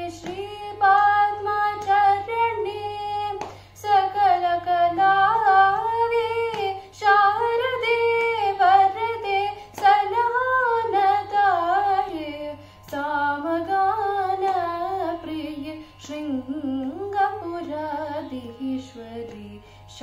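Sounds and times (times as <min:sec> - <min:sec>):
young woman singing: 0:00.0 - 0:20.0.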